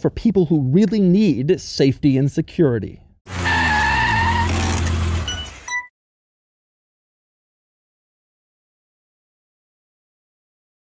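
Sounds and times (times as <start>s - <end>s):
vehicle engine running: 3.3s - 5.7s.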